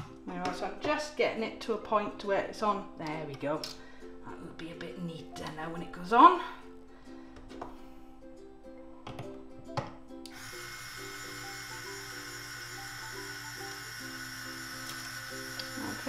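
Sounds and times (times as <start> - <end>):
background music: 0.0 - 16.0
small electric motor running: 10.3 - 16.0.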